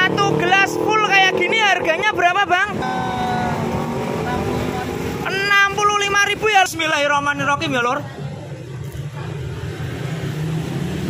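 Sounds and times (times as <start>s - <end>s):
person talking: 0.0s - 8.2s
passing traffic: 0.0s - 11.0s.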